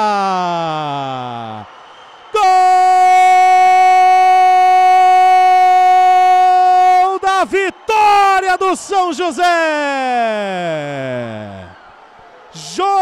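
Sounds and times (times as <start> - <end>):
man shouting long goal call: 0.0 - 1.5, 2.4 - 11.7, 12.6 - 13.0.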